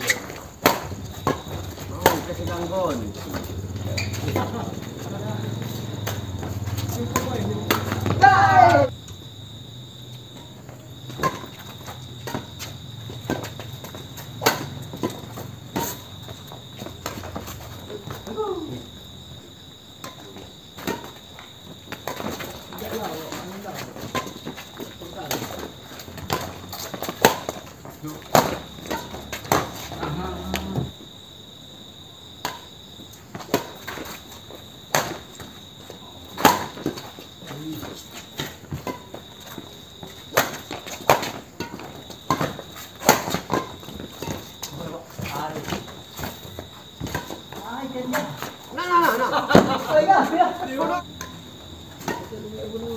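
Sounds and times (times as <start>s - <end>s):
crickets trilling: 0.0s - 52.9s
racket striking shuttlecock: 0.6s - 1.4s, 7.1s - 8.9s, 14.4s - 16.0s, 36.4s - 37.0s, 40.3s - 44.5s.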